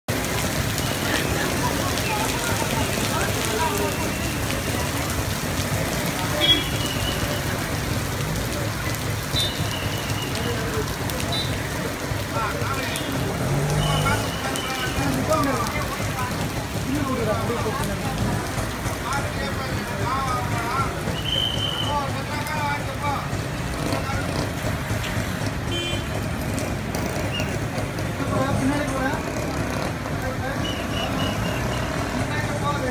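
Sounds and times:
street traffic rumble: 0.0 - 32.9
crowd of voices talking: 0.1 - 32.9
heavy rain on wet road: 0.1 - 32.9.

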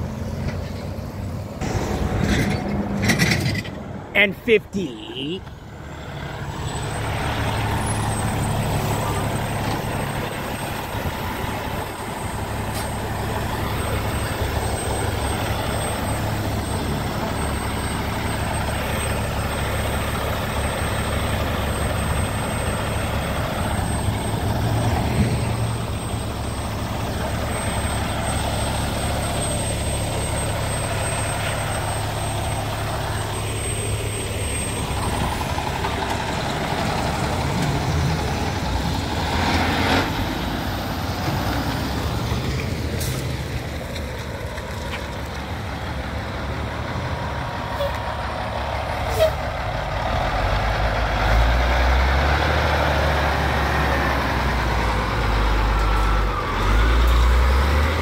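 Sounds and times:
diesel trucks passing: 0.0 - 58.0
dump truck engine: 0.0 - 58.0.

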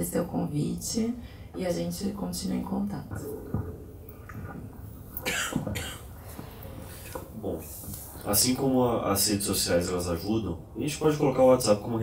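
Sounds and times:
microphone handling knock: 3.0 - 4.8
person coughing: 5.2 - 6.2.

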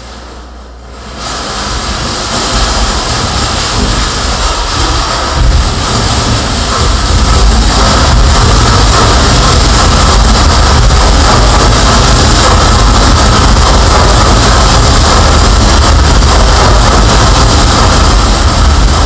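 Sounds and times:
dense distorted harsh noise: 0.0 - 19.0.

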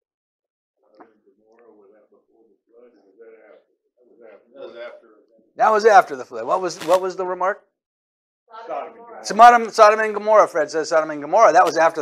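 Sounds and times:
faint distant speech: 0.8 - 5.6.

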